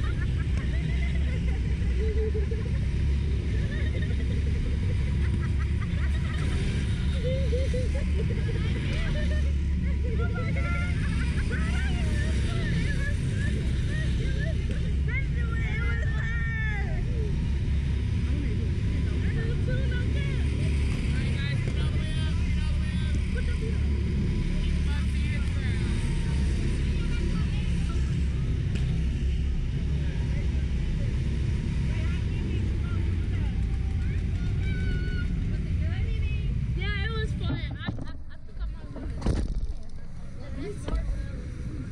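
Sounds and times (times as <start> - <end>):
faint voices: 0.0 - 41.9.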